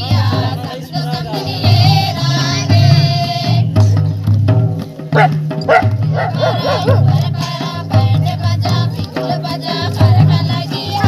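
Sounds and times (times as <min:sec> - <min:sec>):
women singing: 0:00.0 - 0:04.2, 0:06.1 - 0:11.0
barrel drum beat: 0:00.0 - 0:11.0.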